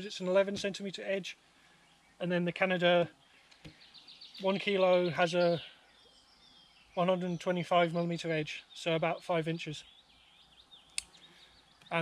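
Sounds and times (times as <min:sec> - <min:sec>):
faint birdsong: 0:00.0 - 0:12.0
man's voice: 0:04.4 - 0:05.7, 0:07.0 - 0:09.8
sharp click: 0:10.9 - 0:11.2.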